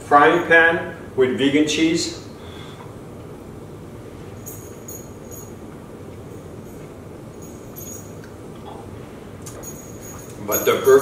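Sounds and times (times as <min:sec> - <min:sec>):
low background hum: 0:00.0 - 0:11.0.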